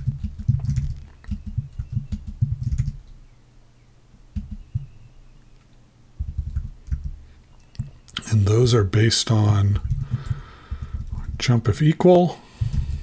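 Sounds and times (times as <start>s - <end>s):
computer keyboard typing: 0.0s - 3.2s, 4.4s - 5.0s, 6.2s - 8.0s, 9.7s - 11.8s.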